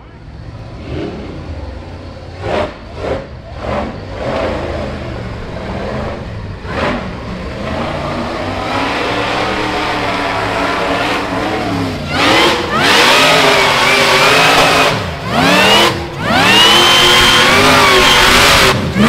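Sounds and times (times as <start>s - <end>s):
buggy engine revving: 0.0s - 19.0s.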